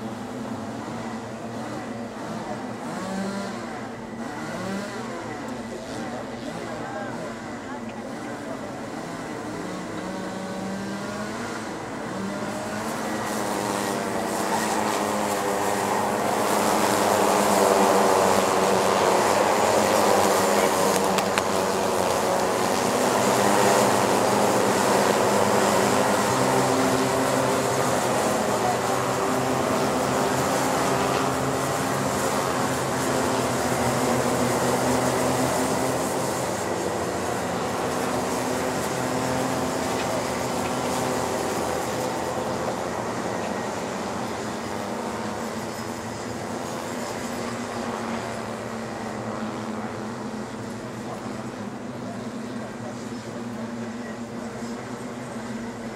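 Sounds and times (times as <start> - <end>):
go-kart engines racing past: 0.0 - 55.9.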